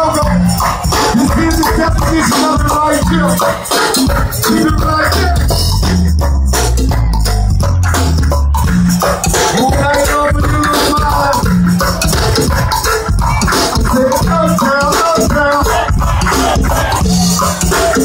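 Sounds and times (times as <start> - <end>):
live band playing loud: 0.0 - 18.0.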